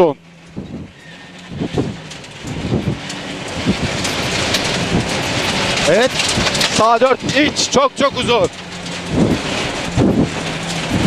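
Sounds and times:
car engine running: 0.0s - 11.0s
stones rattling against underbody: 1.3s - 11.0s.

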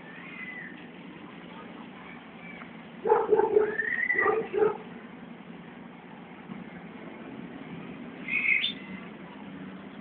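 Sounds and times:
high chirp or whistle: 8.2s - 8.9s.

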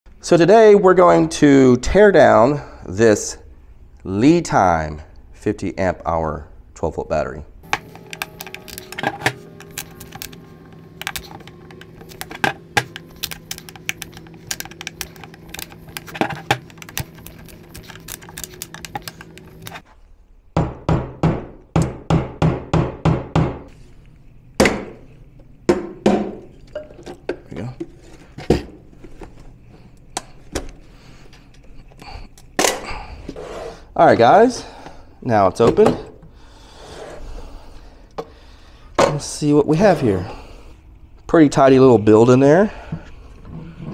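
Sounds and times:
low hum: 7.5s - 20.5s
plastic cracking: 7.6s - 19.8s.

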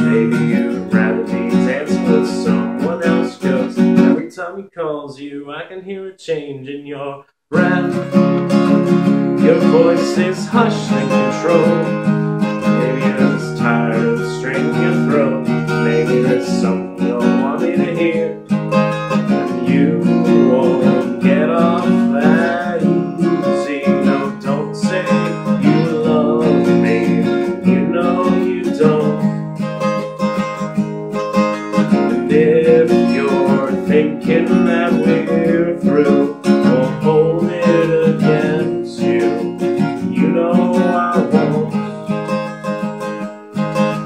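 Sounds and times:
acoustic guitar strumming: 0.0s - 4.3s, 7.5s - 44.0s.

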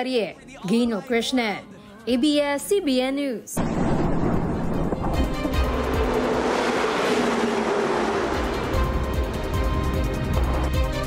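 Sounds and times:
heavy truck driving past: 3.6s - 11.0s.

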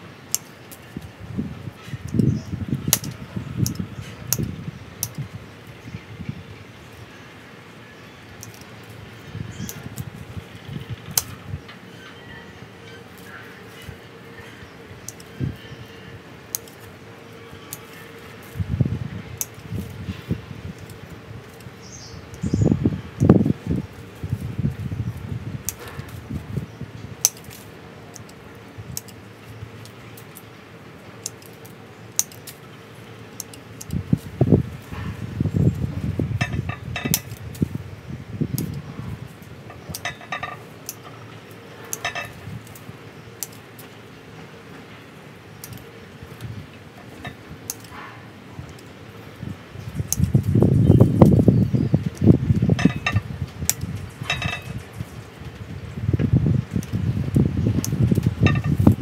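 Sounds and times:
pruning shears snipping: 0.3s - 5.3s, 8.2s - 11.8s, 12.9s - 37.8s, 38.4s - 44.2s, 45.1s - 55.4s
low bumps and rustling branches: 18.2s - 30.6s, 32.5s - 47.8s, 48.5s - 59.0s.

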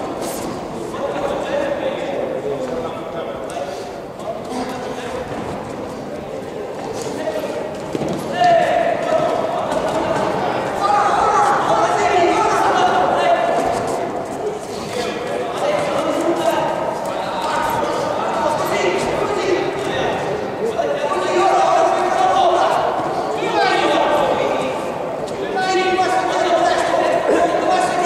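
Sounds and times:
voices calling out in echoing hall: 0.0s - 28.0s.

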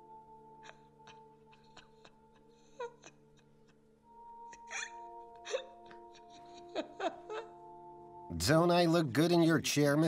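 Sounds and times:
soft background music: 0.0s - 10.0s
woman crying and sobbing: 0.4s - 8.2s.

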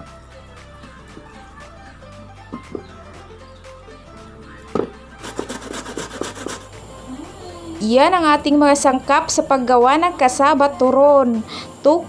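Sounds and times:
background music: 0.0s - 12.0s
cassava rasping on grater: 5.2s - 6.7s.

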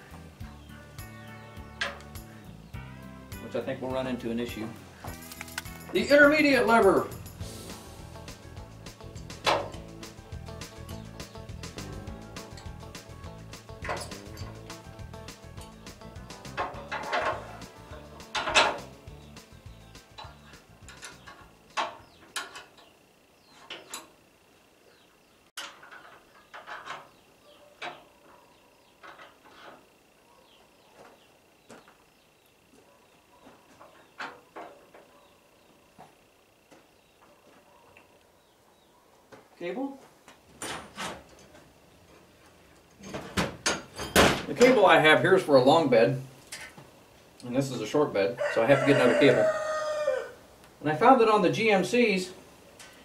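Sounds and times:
background music: 0.0s - 21.8s
metal cable clinking and clanking: 13.7s - 14.8s, 15.5s - 19.0s, 20.0s - 22.9s.

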